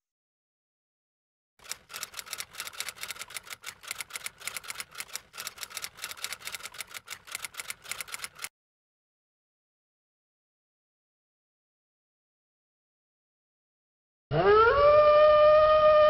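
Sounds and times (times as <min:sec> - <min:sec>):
typewriter keys clacking: 0:01.6 - 0:08.5.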